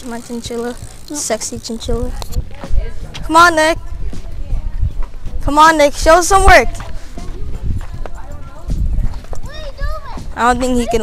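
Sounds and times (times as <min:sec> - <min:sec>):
wind rumble on microphone: 0:00.4 - 0:11.0.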